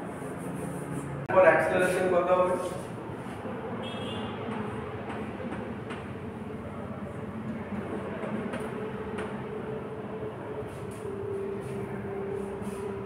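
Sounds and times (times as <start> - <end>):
chalk writing on blackboard: 0.0 - 2.9.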